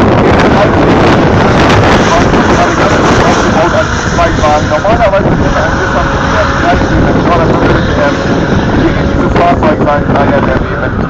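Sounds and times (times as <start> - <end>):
car engine running hard: 0.0 - 11.0
wind buffeting microphone: 0.0 - 11.0.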